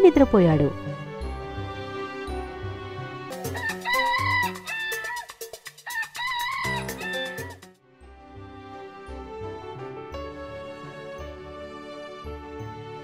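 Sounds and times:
background music: 0.0s - 13.0s
rooster crowing: 3.5s - 7.6s.

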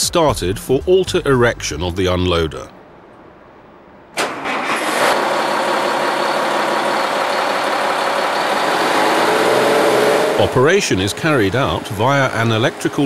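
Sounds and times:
diesel engine starting and running: 4.2s - 13.0s.

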